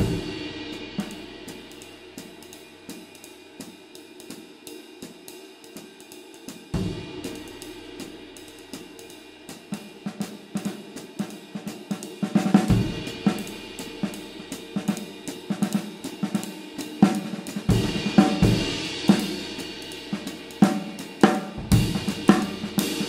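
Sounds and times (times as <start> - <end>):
ride cymbal played with stick: 0.0 - 23.0.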